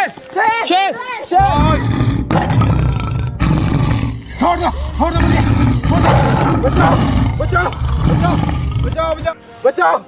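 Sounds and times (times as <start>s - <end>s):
lion roaring: 1.4s - 9.3s.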